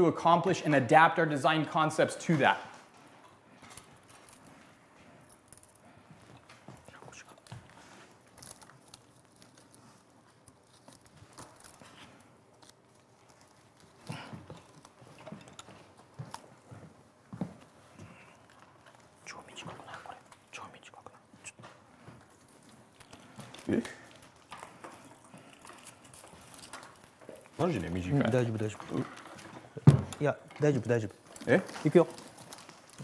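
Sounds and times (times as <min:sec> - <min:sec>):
wire clicks and rustles: 0:01.4 - 0:33.0.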